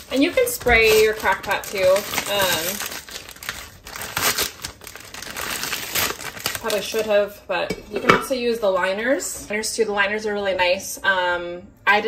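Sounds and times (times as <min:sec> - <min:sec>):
plastic bag crinkling: 0:00.0 - 0:07.2.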